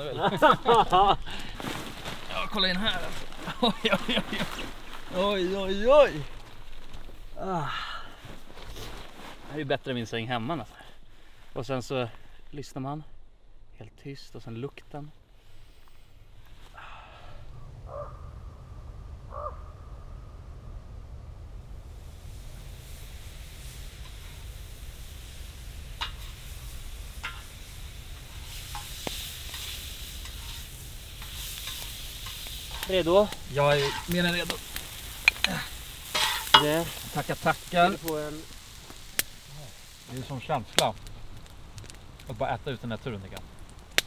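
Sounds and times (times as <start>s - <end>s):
faint campfire hiss: 0.0s - 44.0s
low steady rumble: 0.0s - 44.0s
crow cawing: 17.9s - 18.3s, 19.3s - 19.8s.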